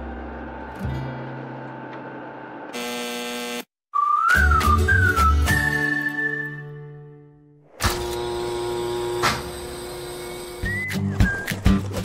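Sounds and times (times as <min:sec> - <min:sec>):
electric hum: 0:00.0 - 0:03.6, 0:07.8 - 0:10.8
whistled tune over a beat: 0:03.9 - 0:07.0, 0:10.6 - 0:12.0.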